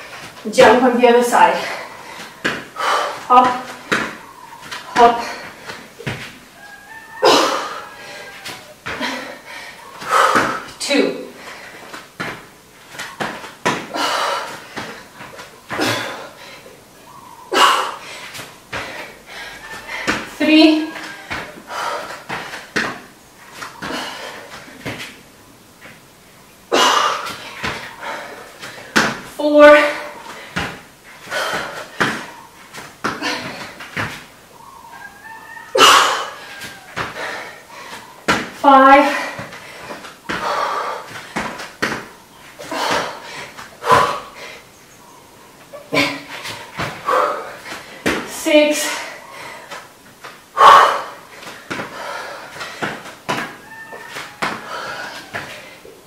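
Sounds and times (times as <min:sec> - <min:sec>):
feet landing on exercise mat: 0:01.7 - 0:06.5, 0:08.4 - 0:09.2, 0:10.0 - 0:11.0, 0:11.6 - 0:16.2, 0:18.3 - 0:19.1, 0:19.8 - 0:25.2, 0:26.8 - 0:34.4, 0:36.4 - 0:44.3, 0:45.9 - 0:48.4, 0:51.2 - 0:55.7.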